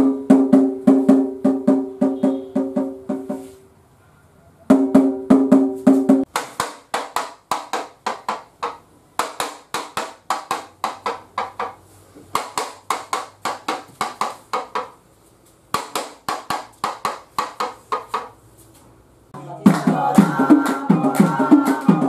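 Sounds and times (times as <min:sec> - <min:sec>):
rhythmic percussion strikes: 0:00.0 - 0:03.5, 0:04.7 - 0:15.0, 0:19.4 - 0:22.0.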